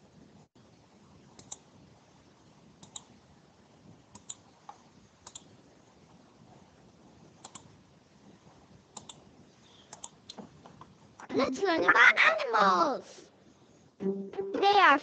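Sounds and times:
background hiss: 0:00.0 - 0:15.0
computer mouse clicks: 0:01.3 - 0:01.7, 0:02.8 - 0:03.2, 0:04.1 - 0:05.6, 0:07.4 - 0:07.7, 0:08.9 - 0:10.9.

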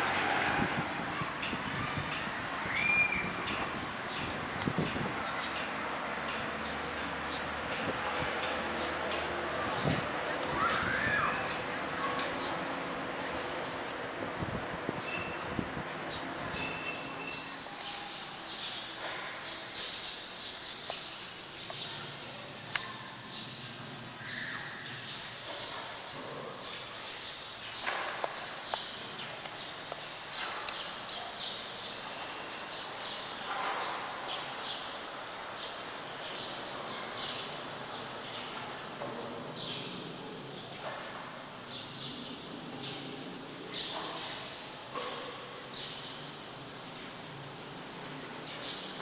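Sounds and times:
faint ambient hiss: 0:00.0 - 0:49.0
insects droning trill: 0:16.1 - 0:49.0.

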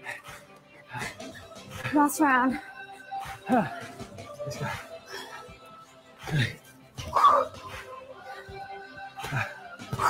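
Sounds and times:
workout music: 0:00.0 - 0:10.0.

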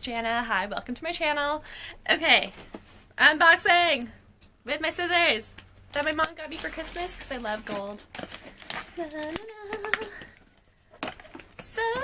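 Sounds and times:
woman singing: 0:09.0 - 0:10.2.

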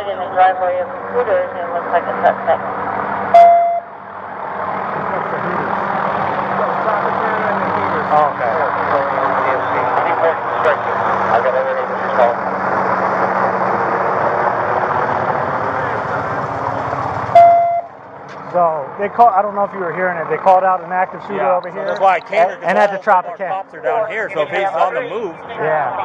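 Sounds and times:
vehicle engine humming: 0:00.0 - 0:26.0
short electronic beep: 0:03.4 - 0:03.9, 0:17.4 - 0:17.9
overlapping indistinct voices: 0:20.3 - 0:26.0.

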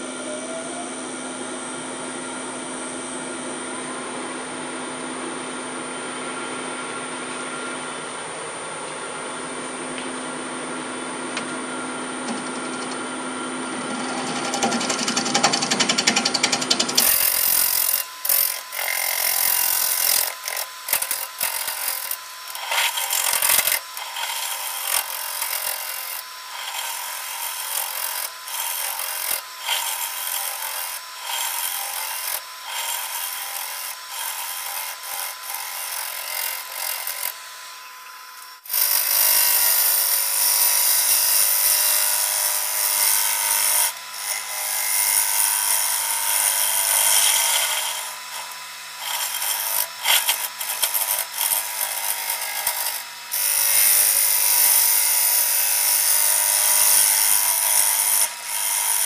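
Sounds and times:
lathe tool scraping wood: 0:11.4 - 0:59.0.

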